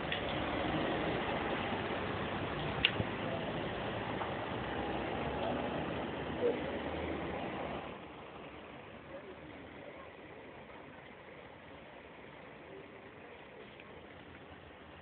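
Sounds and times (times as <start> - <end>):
bus engines idling: 0.0 - 15.0.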